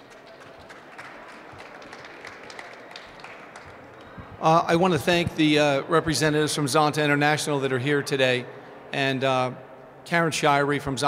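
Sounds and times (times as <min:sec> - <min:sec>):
scattered applause: 0:00.0 - 0:04.9.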